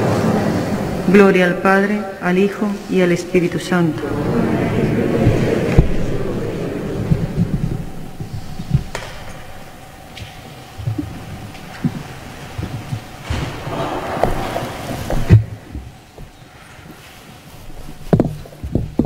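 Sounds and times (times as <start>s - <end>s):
footsteps and shuffling: 2.6s - 19.0s.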